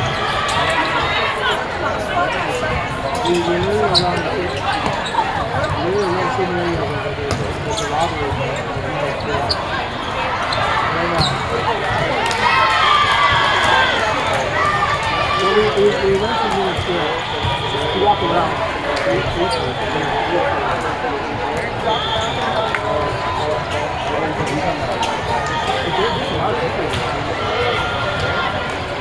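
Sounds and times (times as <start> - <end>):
many voices calling and chattering: 0.0 - 29.0.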